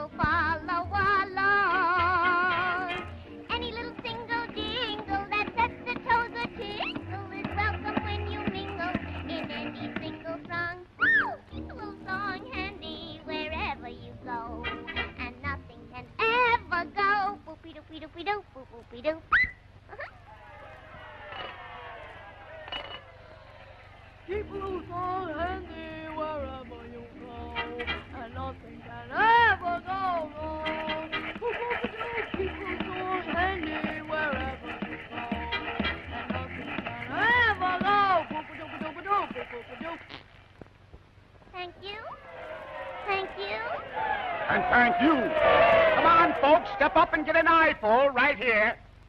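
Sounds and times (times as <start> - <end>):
squeaky cartoon squeals: 11.0 - 11.4, 19.3 - 20.2
short high squeaks: 19.3 - 19.7.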